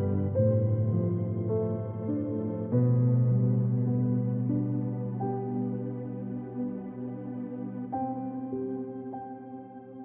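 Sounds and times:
slow ambient piano music: 0.0s - 10.0s.

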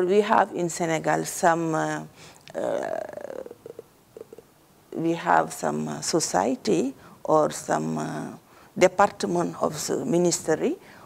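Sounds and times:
woman speaking: 0.0s - 10.8s
woman's drawn-out hesitation: 2.5s - 4.4s.

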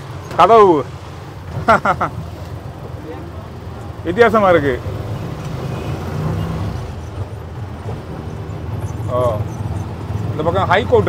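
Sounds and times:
auto-rickshaw engine drone: 0.0s - 11.0s
street traffic: 0.0s - 11.0s.

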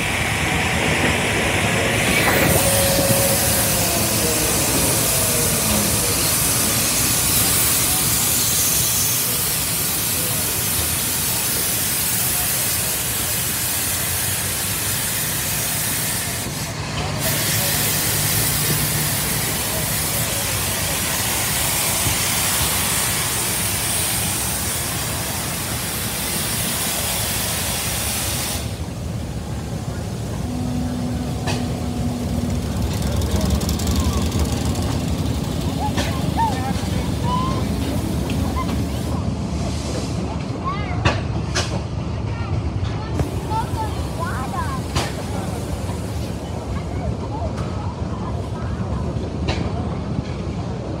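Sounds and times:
steam engine hissing steam: 0.0s - 40.5s, 43.2s - 48.1s
crowd voices: 0.0s - 51.0s
engine rumbling: 28.6s - 47.8s.

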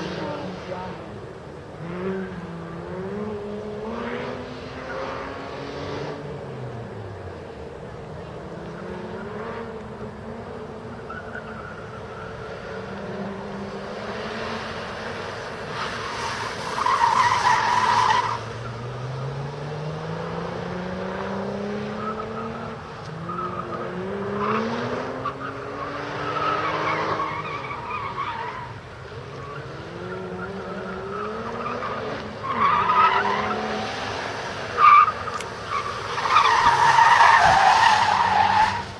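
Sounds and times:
tyres squealing: 24.3s - 33.9s, 34.6s - 38.9s.

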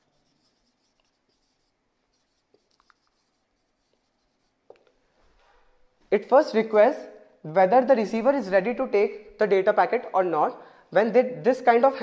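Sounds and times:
marker pen on whiteboard: 0.0s - 6.5s.

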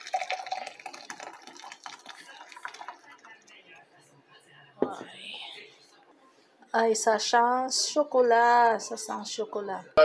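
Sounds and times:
cookware knock: 4.8s - 5.1s
person whispering: 4.9s - 5.8s.

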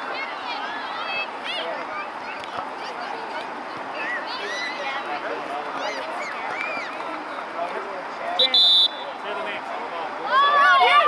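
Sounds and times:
referee's whistle: 8.4s - 9.2s.

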